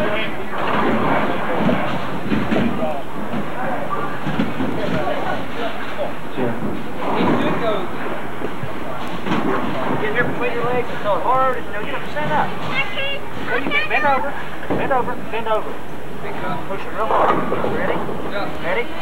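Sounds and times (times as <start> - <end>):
bowling alley rumble and clatter: 0.0 - 19.0
people talking over one another: 8.6 - 18.8.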